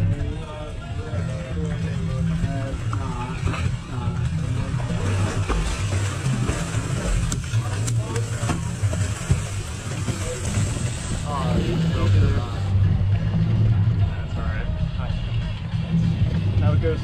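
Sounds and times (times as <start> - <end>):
outboard engines rumbling: 0.0 - 17.0
water splashing at stern: 0.0 - 17.0.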